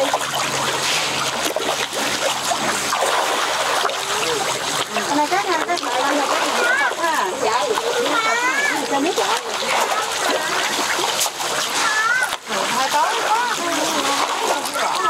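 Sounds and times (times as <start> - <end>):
fish splashing in water: 0.0 - 15.0
voices calling: 4.0 - 11.0.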